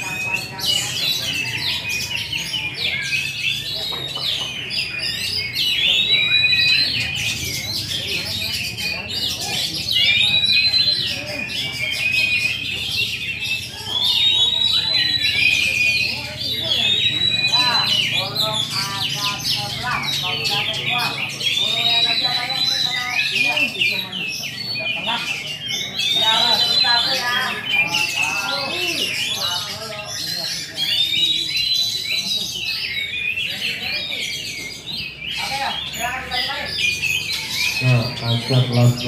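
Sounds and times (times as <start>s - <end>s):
songbirds chirping and trilling: 0.0s - 39.0s.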